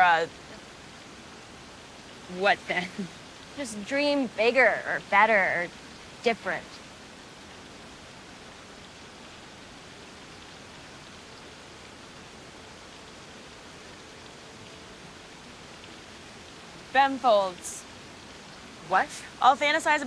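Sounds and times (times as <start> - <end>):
steady hiss of background noise: 0.0 - 20.0.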